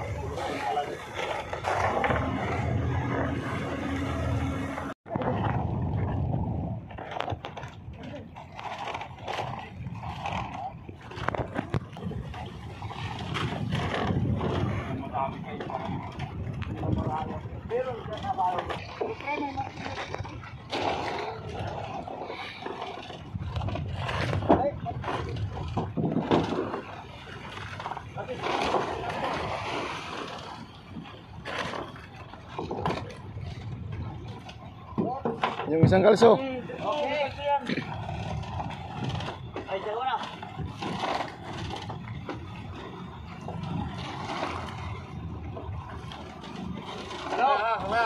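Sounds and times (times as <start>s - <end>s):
low rumble: 0.0s - 35.0s
people talking indistinctly: 14.9s - 20.5s.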